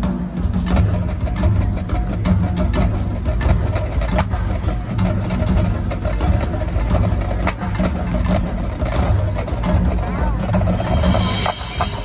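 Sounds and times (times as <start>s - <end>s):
marching band playing: 0.0s - 12.0s
percussion strikes: 0.0s - 12.0s.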